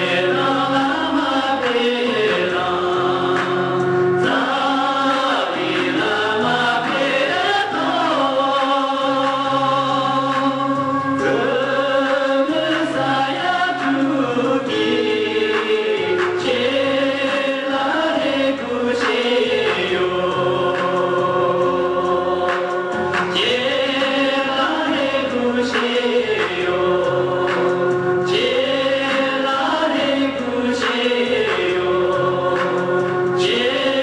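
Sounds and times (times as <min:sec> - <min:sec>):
men singing chant-like song: 0:00.0 - 0:34.0.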